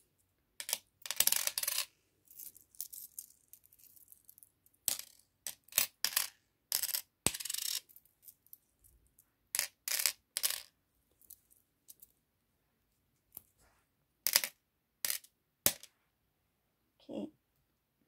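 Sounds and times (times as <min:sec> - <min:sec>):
metal charms clinking on a board: 0:00.6 - 0:08.6.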